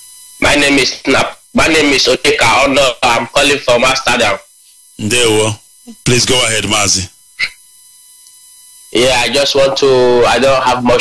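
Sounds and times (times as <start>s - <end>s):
electrical hum with high tones: 0.0s - 11.0s.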